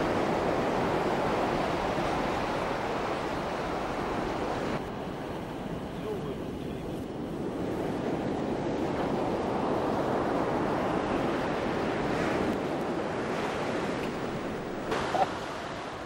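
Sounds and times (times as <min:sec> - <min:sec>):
surf washing onto beach: 0:00.0 - 0:16.0
wind on microphone: 0:00.0 - 0:16.0.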